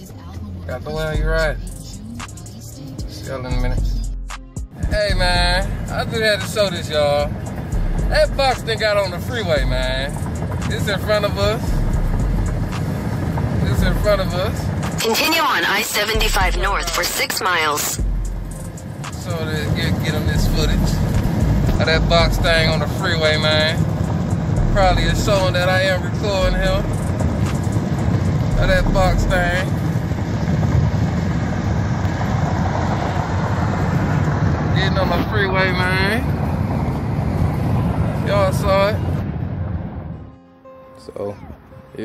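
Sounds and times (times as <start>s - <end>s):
car cabin road rumble: 0.0s - 40.3s.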